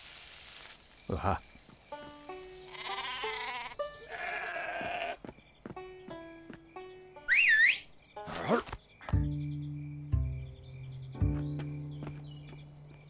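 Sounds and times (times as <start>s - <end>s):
light cartoon music: 1.9s - 4.4s, 5.7s - 12.7s
sheep bleating: 2.6s - 5.3s
rising and falling whistle: 7.3s - 7.9s.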